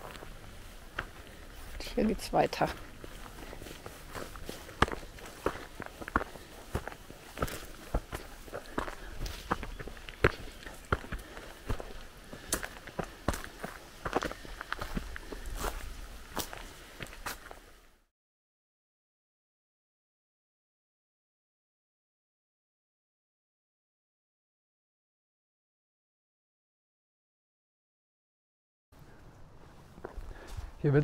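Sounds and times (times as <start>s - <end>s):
footsteps crunching on stony path: 0.0s - 17.9s, 29.0s - 31.0s.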